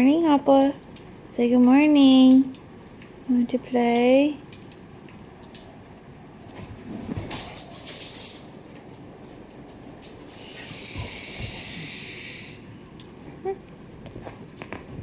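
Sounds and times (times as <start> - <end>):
steady hiss: 9.8 - 12.8.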